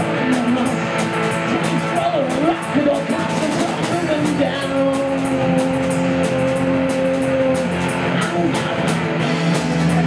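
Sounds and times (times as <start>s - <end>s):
bass and drums: 0.0s - 10.0s
distorted electric guitar: 0.0s - 10.0s.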